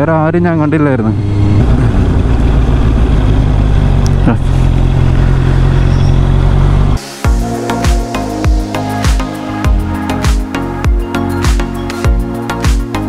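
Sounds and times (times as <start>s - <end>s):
motorcycle engine running: 0.0s - 11.1s
brief falling tone: 7.0s - 10.3s
background music with a beat: 7.0s - 13.0s.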